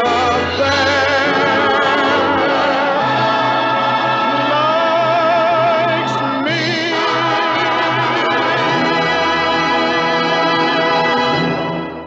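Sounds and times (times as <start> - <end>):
choir singing: 0.0 - 11.9
orchestral film music: 0.0 - 12.0.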